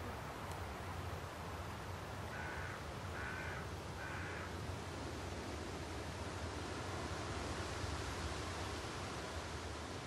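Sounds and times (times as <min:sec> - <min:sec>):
steady hiss: 0:00.0 - 0:10.0
bird calling: 0:02.3 - 0:04.6.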